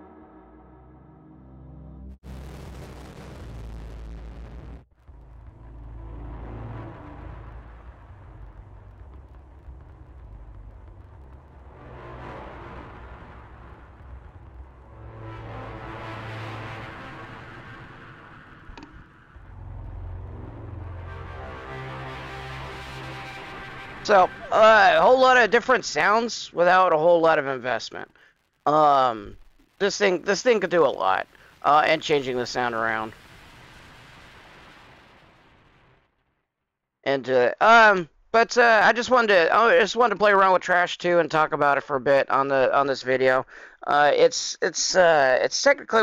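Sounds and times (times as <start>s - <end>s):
distorted synthesizer note: 0.0s - 26.1s.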